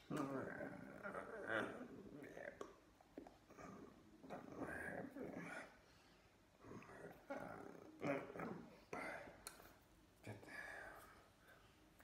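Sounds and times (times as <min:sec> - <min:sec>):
man making wordless vocal sounds: 0:00.0 - 0:05.8.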